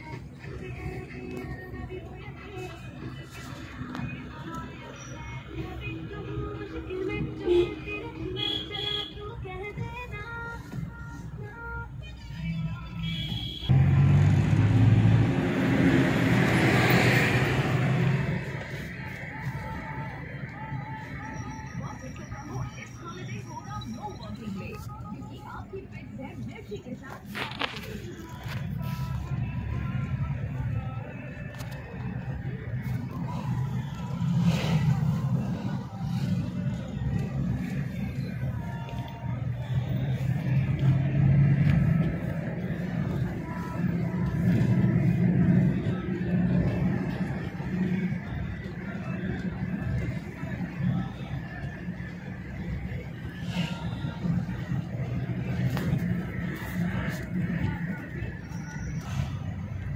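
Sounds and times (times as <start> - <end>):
lorry diesel engine: 0.0 - 59.9
road and wind noise: 0.0 - 59.9.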